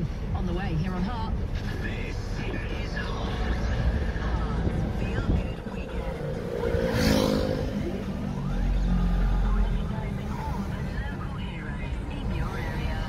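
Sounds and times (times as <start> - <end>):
car engine and tyre noise: 0.0 - 13.0
car radio playing: 0.0 - 13.0.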